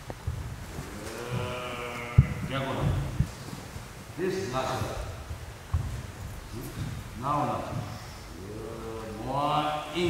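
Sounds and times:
bare feet stamping on wooden floor: 0:00.0 - 0:08.0.

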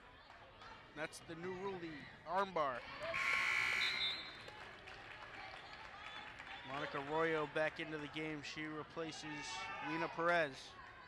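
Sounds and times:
scoreboard buzzer: 0:03.2 - 0:04.0.

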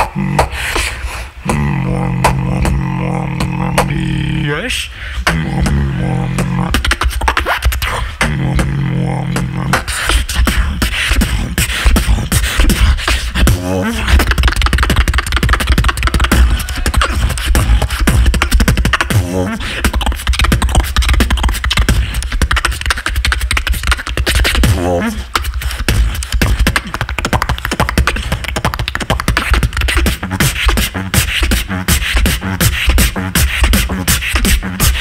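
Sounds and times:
heavy continuous bass: 0:00.0 - 0:00.6, 0:01.4 - 0:28.4, 0:29.6 - 0:35.0
beatboxing into microphone: 0:00.0 - 0:35.0
warbling vocal sounds: 0:00.0 - 0:35.0.

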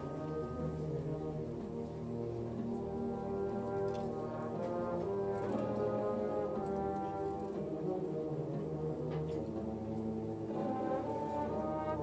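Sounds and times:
wind band playing low chords: 0:00.0 - 0:12.0.

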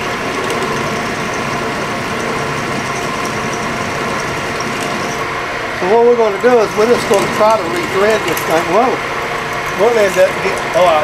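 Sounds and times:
milling machine drilling steel: 0:00.0 - 0:11.0.

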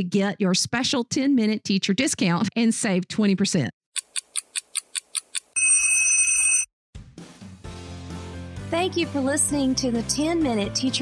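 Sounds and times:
timer ticking: 0:04.0 - 0:05.7
loud high timer ring: 0:05.6 - 0:06.7
background music: 0:07.0 - 0:11.0.

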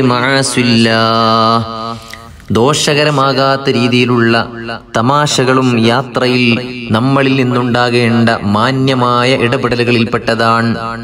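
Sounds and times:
man chanting: 0:00.0 - 0:11.0.

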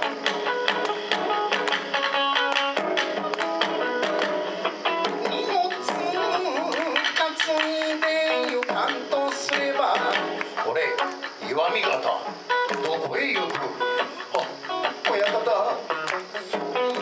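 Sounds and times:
electric guitar phrases: 0:00.0 - 0:17.0
person singing with vibrato: 0:04.5 - 0:11.8, 0:12.7 - 0:17.0.

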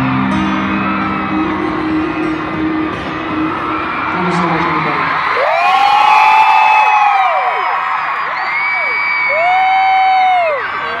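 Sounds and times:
stadium crowd cheering: 0:00.0 - 0:11.0
fans high-pitched screams: 0:03.6 - 0:11.0.

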